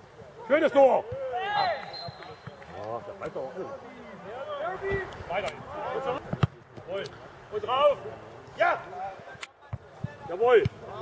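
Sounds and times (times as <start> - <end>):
men shouting and calling out: 0.2 - 11.0.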